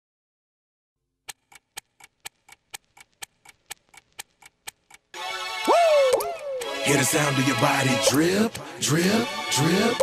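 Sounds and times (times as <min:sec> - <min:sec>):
clock-style ticking: 0:01.2 - 0:08.6.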